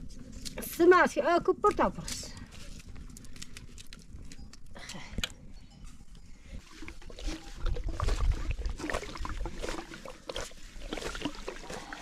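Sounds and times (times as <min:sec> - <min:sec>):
dry pieces crackling when crushed: 0:02.0 - 0:04.8.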